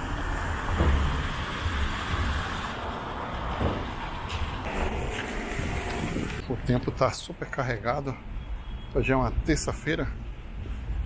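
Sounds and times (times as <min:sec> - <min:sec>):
traffic background: 0:00.0 - 0:11.0.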